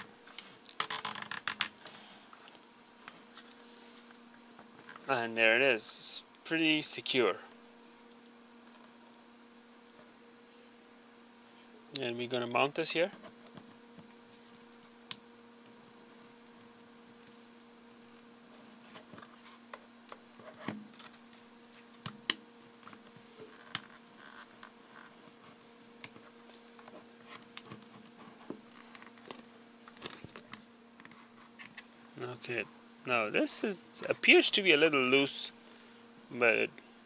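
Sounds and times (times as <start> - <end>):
faint electrical hum: 0.0 - 37.0.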